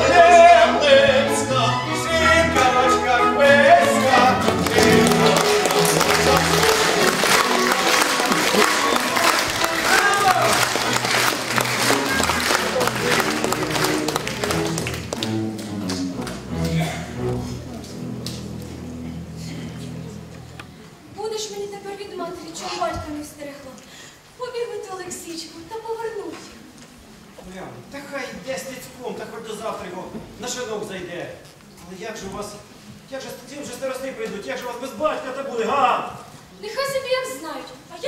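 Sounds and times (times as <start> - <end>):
chamber orchestra playing: 0.0 - 21.0
audience applause: 3.8 - 18.4.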